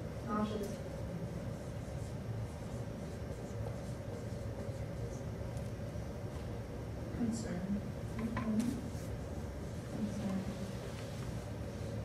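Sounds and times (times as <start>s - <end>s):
low room hum: 0.0s - 12.0s
marker writing on whiteboard: 0.3s - 6.6s, 8.1s - 12.0s.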